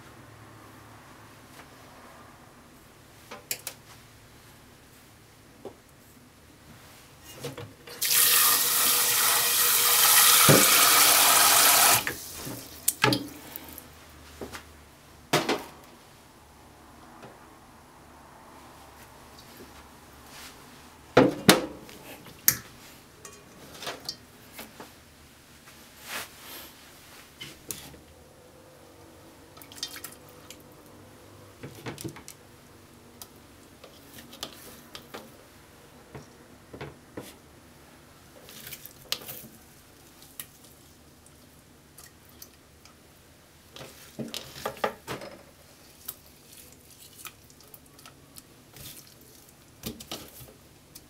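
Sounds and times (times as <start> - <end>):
tap running into sink: 8.0 - 12.2.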